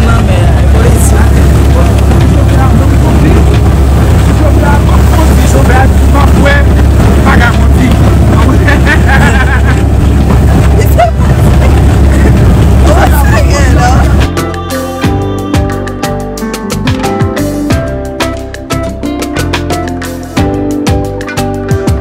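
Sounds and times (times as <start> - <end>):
voices talking: 0.0 - 14.3
wind buffeting microphone: 0.0 - 14.3
boat engine rumbling: 0.0 - 22.0.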